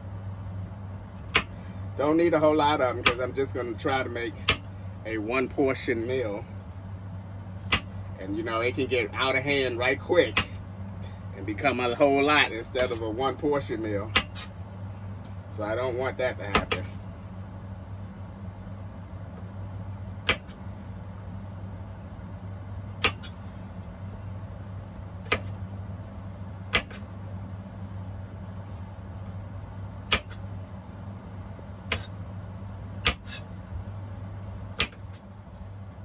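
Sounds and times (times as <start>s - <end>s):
steady low hum: 0.0s - 36.0s
knife chopping on cutting board: 14.1s - 14.5s, 16.5s - 16.9s, 20.2s - 20.6s, 23.0s - 23.4s, 25.2s - 25.6s, 26.7s - 27.0s, 30.1s - 30.4s, 31.9s - 32.1s, 33.0s - 33.4s, 34.7s - 35.2s.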